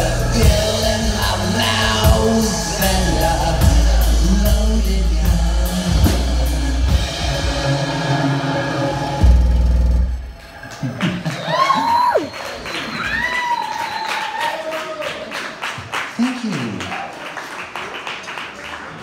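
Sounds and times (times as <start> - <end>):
live band with drums and vocals: 0.0 - 12.3
people whooping: 10.4 - 15.4.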